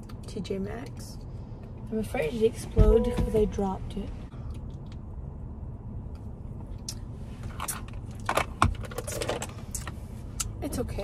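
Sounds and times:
steady low rumble: 0:00.0 - 0:08.8.

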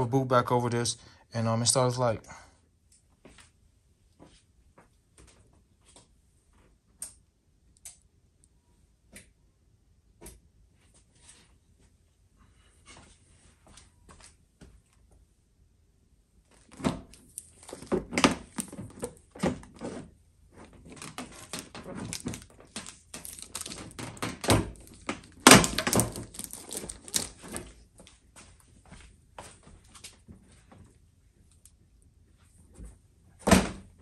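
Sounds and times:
plastic rustling: 0:16.5 - 0:28.0.

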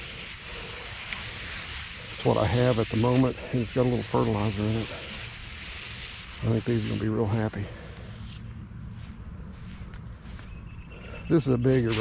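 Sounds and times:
hose spraying water: 0:00.0 - 0:08.4, 0:11.6 - 0:12.0.

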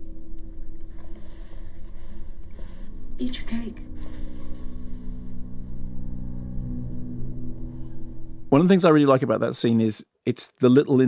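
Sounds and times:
low droning tones: 0:00.0 - 0:08.7.

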